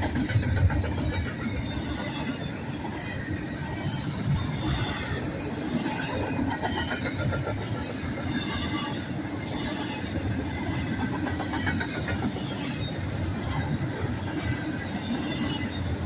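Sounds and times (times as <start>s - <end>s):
train wheels rumbling on rail: 0.0s - 16.0s
high wheel squeaks: 1.1s - 13.8s.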